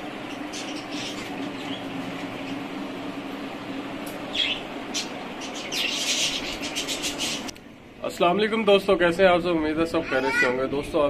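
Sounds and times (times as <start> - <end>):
small birds chirping: 0.0 - 3.2, 4.1 - 7.5
steady low hum: 0.0 - 11.0.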